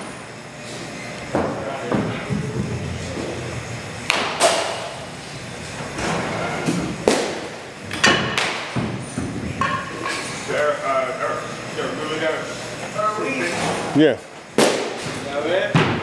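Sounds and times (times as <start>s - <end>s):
baseballs being hit: 4.0s - 5.1s, 6.7s - 9.9s, 14.6s - 15.1s.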